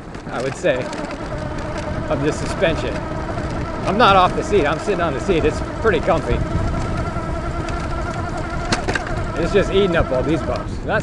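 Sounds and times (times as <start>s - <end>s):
electric bike motor whining: 0.0s - 11.0s
tyres rumbling on grass: 0.0s - 11.0s.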